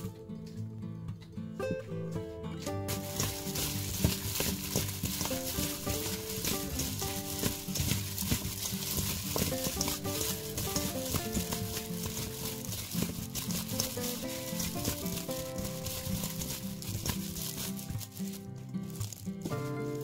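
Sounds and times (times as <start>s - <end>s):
background music with melody: 0.0s - 20.0s
broccoli rustling in bowl: 2.9s - 20.0s.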